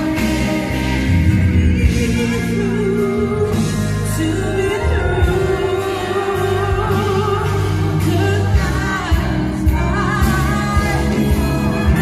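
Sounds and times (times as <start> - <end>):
bass guitar: 0.0 - 12.0
drums: 0.0 - 12.0
person singing: 0.0 - 12.0.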